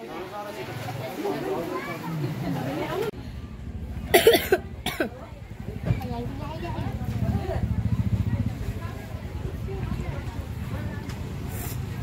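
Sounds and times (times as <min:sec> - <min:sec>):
person coughing: 0:04.1 - 0:05.2.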